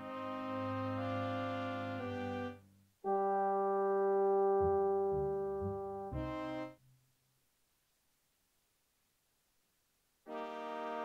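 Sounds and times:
orchestral accompaniment: 0.0s - 6.8s.

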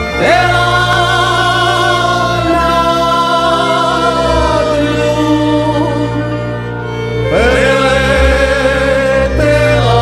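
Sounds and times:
cimbalom band playing folk song: 0.0s - 10.0s
person singing with vibrato: 0.0s - 10.0s.

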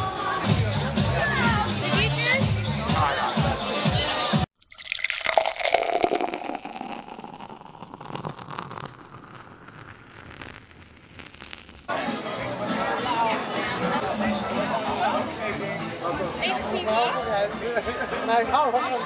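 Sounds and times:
music: 0.0s - 4.5s, 11.9s - 19.0s
liquid pouring and fizzing: 4.6s - 11.9s
market chatter: 11.9s - 19.0s.

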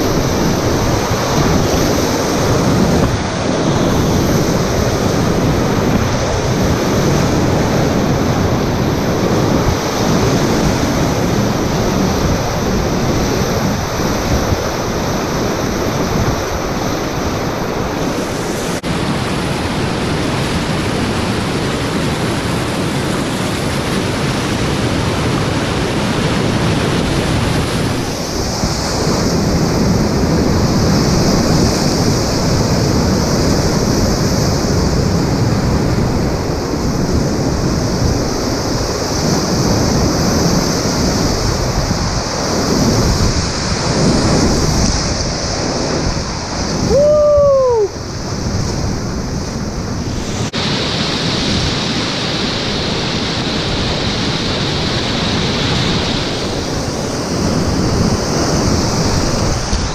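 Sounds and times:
whitewater rapids rushing: 0.0s - 59.9s
wind buffeting microphone: 0.0s - 59.9s.

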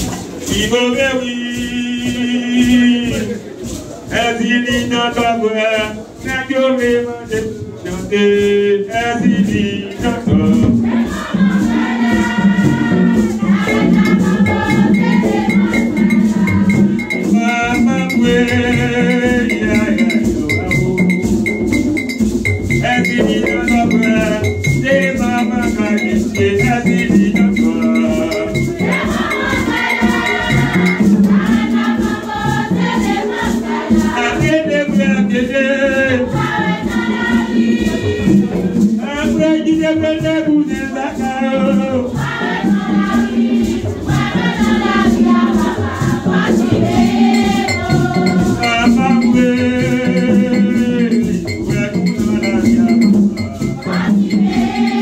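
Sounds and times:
congregation singing: 0.0s - 55.0s.

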